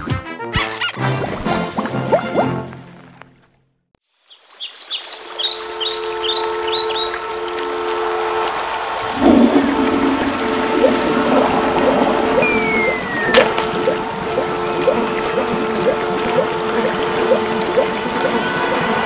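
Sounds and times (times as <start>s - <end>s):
toilet flushing: 8.8s - 19.0s
steady drone: 8.9s - 19.0s
birds chirping: 9.0s - 19.0s
short falling whistle: 12.4s - 13.5s.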